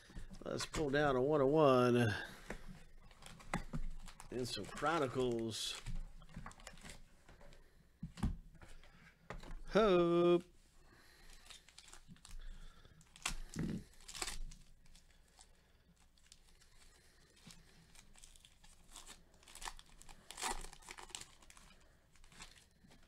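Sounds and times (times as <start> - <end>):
foil wrapper tearing and crinkling: 11.2 - 23.0.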